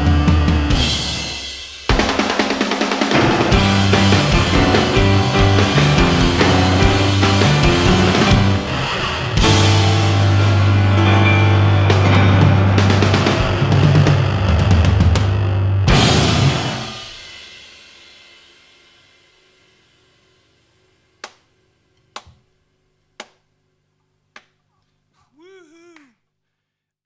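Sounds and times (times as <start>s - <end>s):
rock trio playing loud: 0.0s - 17.4s.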